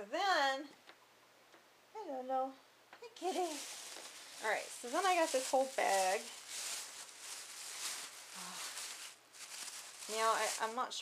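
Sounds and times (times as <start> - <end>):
plastic bag rustling and crinkling: 3.2 - 11.0.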